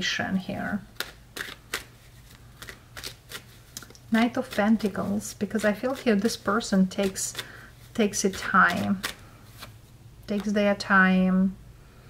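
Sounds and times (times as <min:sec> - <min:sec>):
cards being shuffled: 0:00.9 - 0:10.6.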